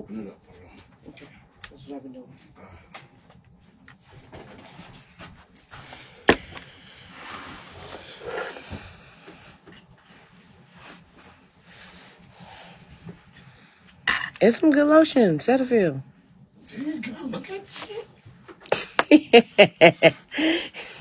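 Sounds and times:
rustling and shuffling: 0.5 - 12.0.

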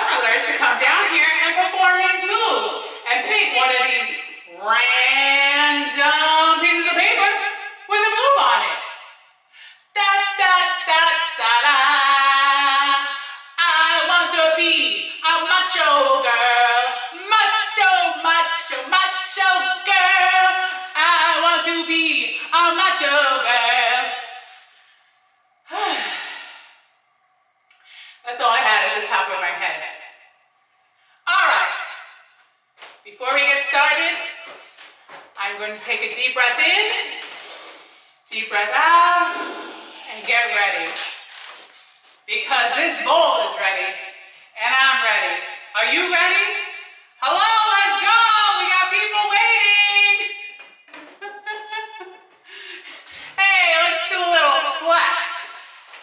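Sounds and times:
breathy exhale: 37.4 - 38.3, 39.3 - 40.2.

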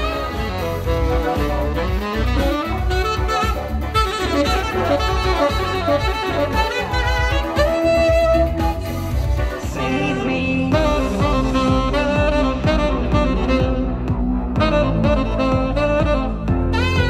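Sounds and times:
disco backing track: 0.0 - 17.0
saxophone melody: 0.0 - 17.0.

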